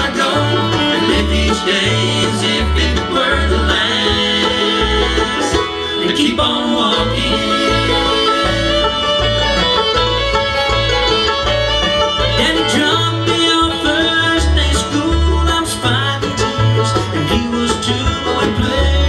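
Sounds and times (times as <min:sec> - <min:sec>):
bluegrass band playing: 0:00.0 - 0:19.0.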